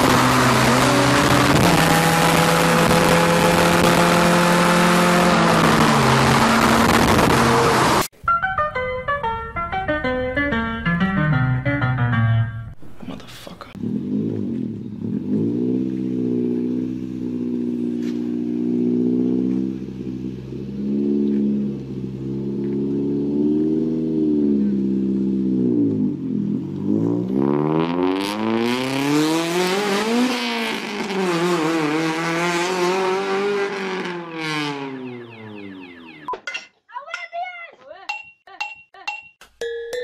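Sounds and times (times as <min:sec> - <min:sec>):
car engine revving: 0:00.0 - 0:08.1, 0:13.7 - 0:36.3
loud car exhaust: 0:00.0 - 0:08.1, 0:13.8 - 0:36.3.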